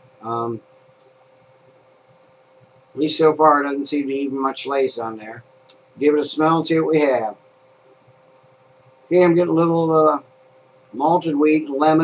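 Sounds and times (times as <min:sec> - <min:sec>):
window fan hiss and hum: 0:00.0 - 0:12.0.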